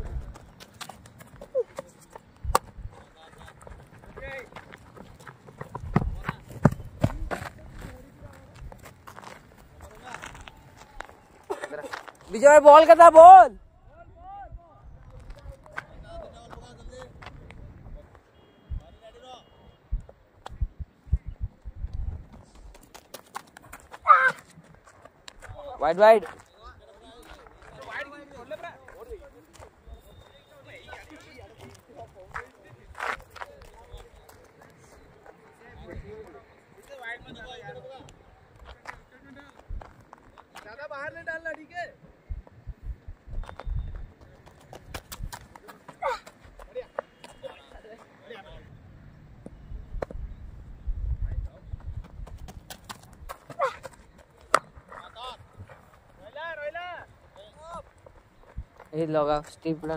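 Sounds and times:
running footsteps: 0.0 - 13.4, 21.9 - 36.7, 42.4 - 48.2, 51.5 - 59.9
distant players shouting: 12.3 - 14.6, 23.9 - 24.6.

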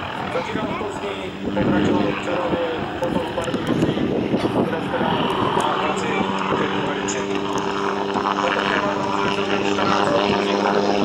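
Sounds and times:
helicopter rotor beating: 0.0 - 11.0.

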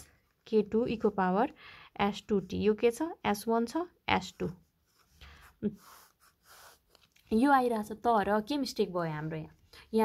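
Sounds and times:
faint breathing: 1.5 - 2.0
pen scratching on paper: 4.1 - 7.1.

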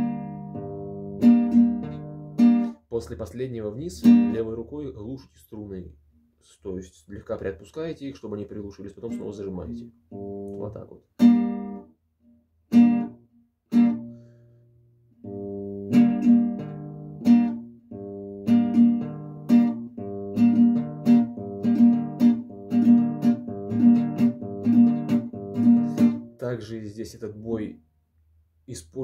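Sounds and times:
classical guitar strumming: 0.0 - 4.7, 8.7 - 27.1.

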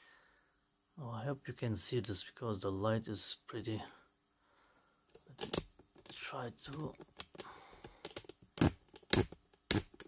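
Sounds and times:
handling clicks and taps: 5.1 - 10.0.

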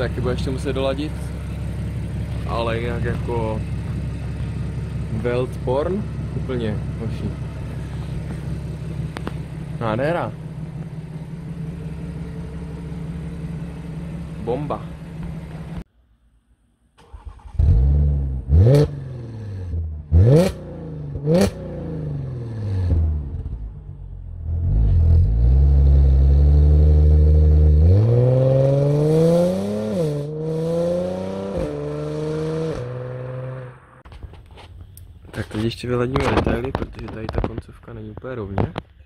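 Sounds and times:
car engine revving and idling: 0.0 - 15.9, 17.1 - 34.0.

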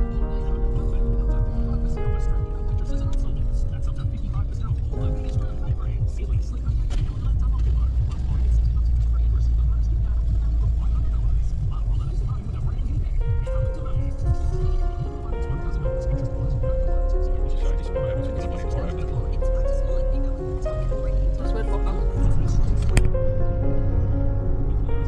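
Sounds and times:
background music with held notes: 0.0 - 25.0
car cabin road and engine rumble: 0.0 - 25.0.

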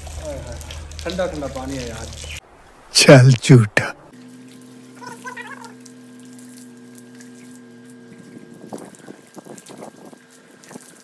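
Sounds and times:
hose water splashing on mat: 0.0 - 2.4, 4.2 - 11.0
steady low hum: 0.0 - 2.4, 3.0 - 11.0.

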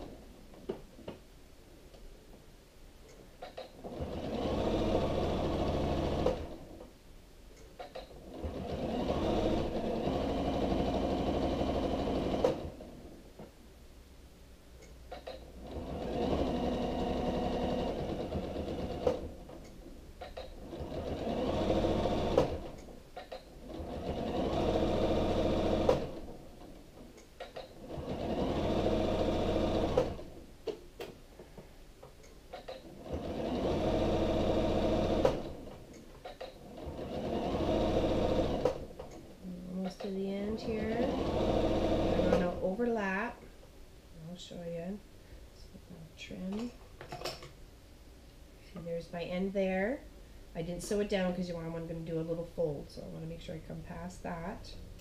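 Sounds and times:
sewing machine stitching: 3.4 - 6.8, 7.8 - 13.0, 15.1 - 19.6, 20.3 - 26.4, 27.4 - 30.4, 32.5 - 39.3, 39.9 - 42.7.

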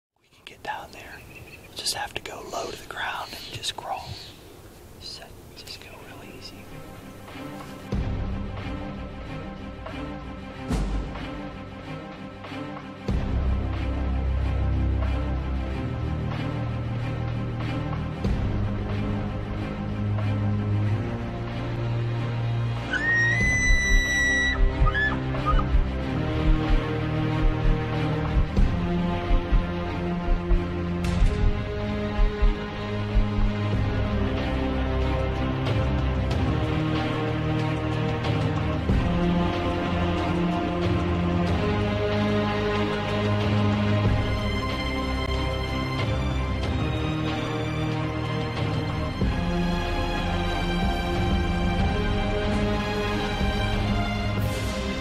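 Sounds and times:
man whispering: 0.2 - 6.8
background music with steady beat: 5.2 - 55.0
elk bugling whistle: 22.9 - 25.8.

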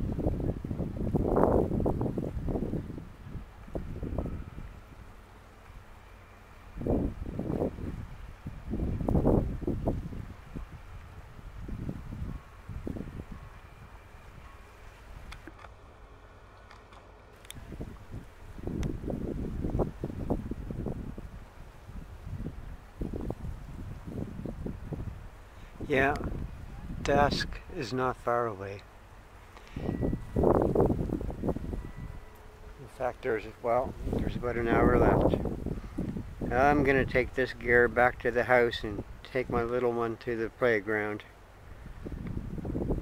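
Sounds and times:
wind buffeting microphone: 0.0 - 16.0, 17.4 - 43.0.

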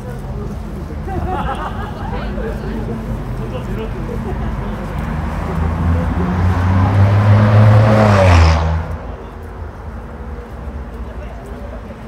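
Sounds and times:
street chatter: 0.0 - 12.0
vehicle driving past: 4.2 - 9.2.

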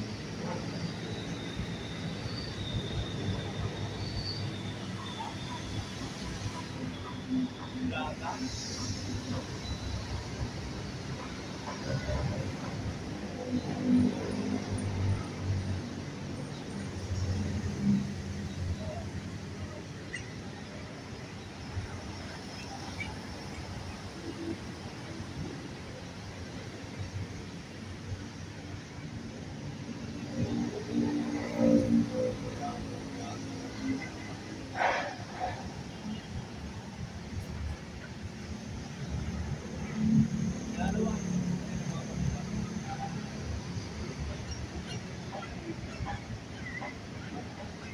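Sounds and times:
outdoor background noise: 0.0 - 47.9.

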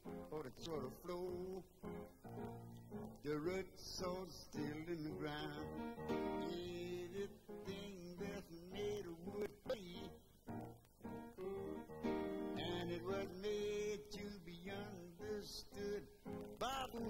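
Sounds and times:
blues guitar instrumental: 0.0 - 17.0.

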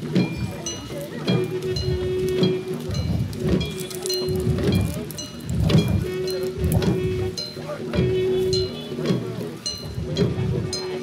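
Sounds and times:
long drums beaten fast: 0.0 - 11.0
metal gongs ringing: 0.1 - 11.0.

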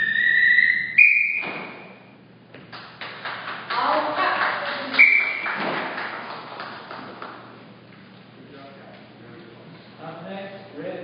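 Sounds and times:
sharp whistle blast: 0.0 - 2.1, 5.0 - 5.5
people clapping: 2.6 - 7.6.

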